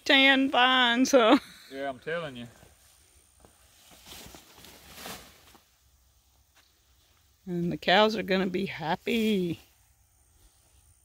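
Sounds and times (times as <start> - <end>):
leafy vines rustling: 2.5 - 7.3.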